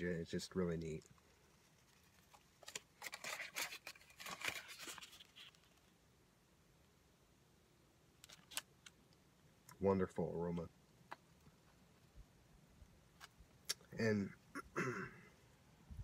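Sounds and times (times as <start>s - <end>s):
foil crinkling and rustling: 1.7s - 5.9s.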